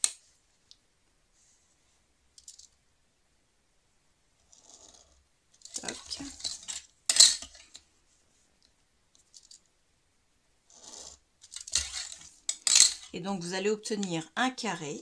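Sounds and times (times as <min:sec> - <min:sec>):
scraping on cutting mat: 0:10.7 - 0:13.1.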